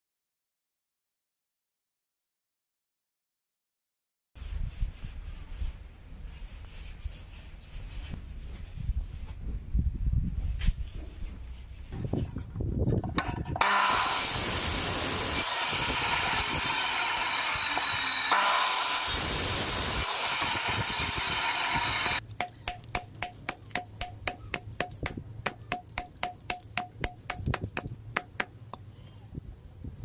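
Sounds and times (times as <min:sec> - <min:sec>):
power saw cutting bamboo: 0:13.2 - 0:26.9.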